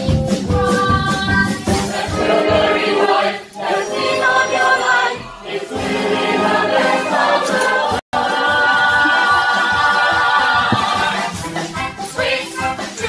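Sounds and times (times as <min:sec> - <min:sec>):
several voices singing: 0:00.7 - 0:13.0.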